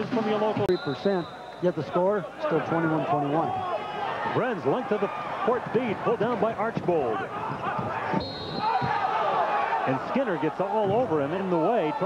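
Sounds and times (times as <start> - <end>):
crowd noise: 0.0 - 12.0
referee's whistle: 0.6 - 2.1, 8.1 - 8.9.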